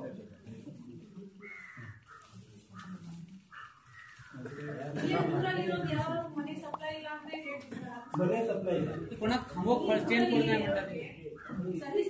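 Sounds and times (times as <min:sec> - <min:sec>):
crow cawing: 0:01.4 - 0:05.0, 0:11.3 - 0:11.8.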